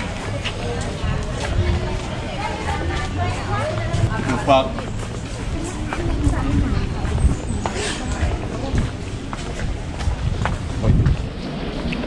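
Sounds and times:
people talking indistinctly: 0.0 - 11.1
low microphone rumble: 0.0 - 12.0.

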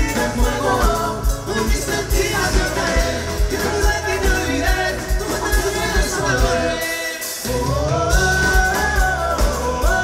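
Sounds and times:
live dance band music: 0.0 - 10.0.

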